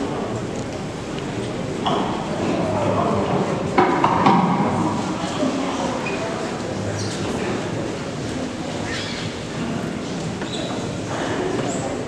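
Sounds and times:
crowd murmur in echoing church: 0:00.0 - 0:12.0.

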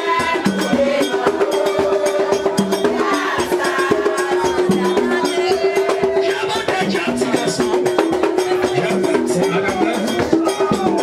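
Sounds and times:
ceremonial drumming and percussion: 0:00.0 - 0:11.0.

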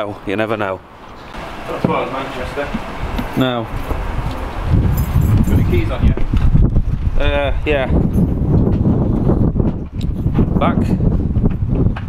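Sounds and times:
wind buffeting microphone: 0:01.3 - 0:12.0.

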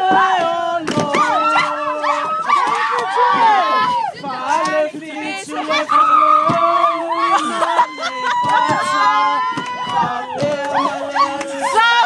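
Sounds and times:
women whooping and squealing: 0:01.2 - 0:04.2, 0:05.7 - 0:12.0.

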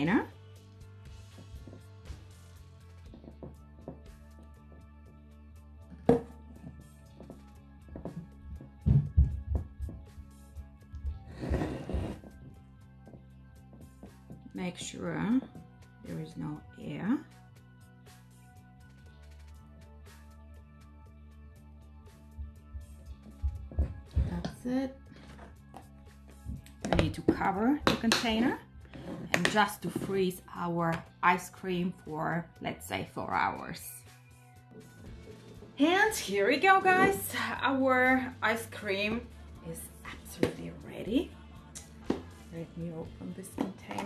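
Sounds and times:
background music: 0:00.0 - 0:44.0.

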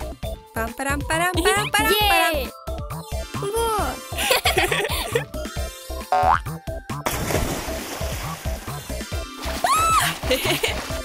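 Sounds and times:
bouncy background music: 0:00.0 - 0:11.0
cartoon rising boing: 0:06.1 - 0:06.5
water splash: 0:07.0 - 0:11.0.

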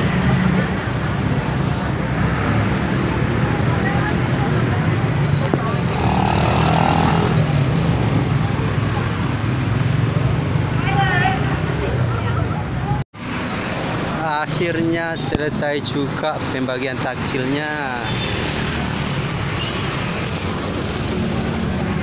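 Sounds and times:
crowd chatter: 0:00.0 - 0:13.0
scooter engines running: 0:00.0 - 0:13.0.

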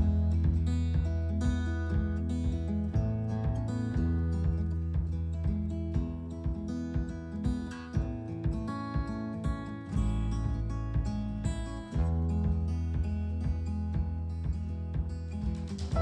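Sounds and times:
acoustic guitar piece: 0:00.0 - 0:16.0
steady bass line: 0:00.0 - 0:16.0.

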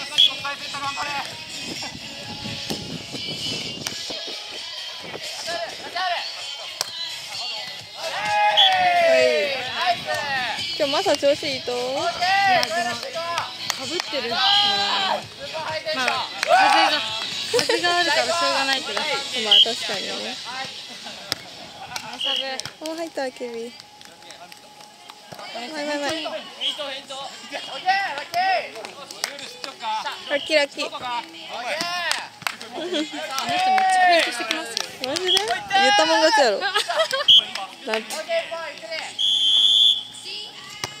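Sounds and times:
whistle blast: 0:00.1 - 0:00.4, 0:19.5 - 0:19.8, 0:22.2 - 0:22.5, 0:26.6 - 0:26.8, 0:39.2 - 0:40.1
hand slapping volleyball: 0:03.8 - 0:04.1, 0:06.7 - 0:07.0, 0:12.5 - 0:14.2, 0:20.6 - 0:26.4, 0:28.0 - 0:30.2, 0:30.9 - 0:35.6, 0:40.8 - 0:41.0
players calling out: 0:08.0 - 0:10.3, 0:12.0 - 0:22.7, 0:31.4 - 0:40.1.

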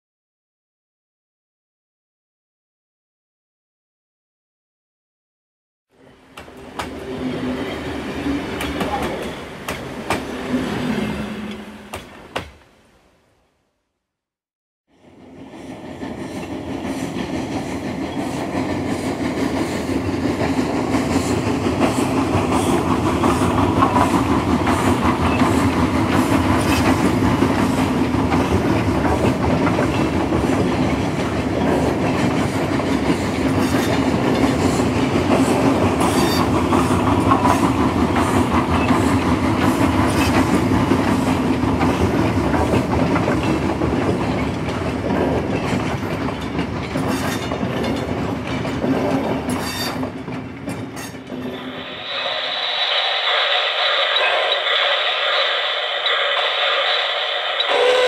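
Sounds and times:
metal wheels rumbling on track: 0:16.1 - 0:58.0
wheels clicking over rail joints: 0:41.6 - 0:51.5.

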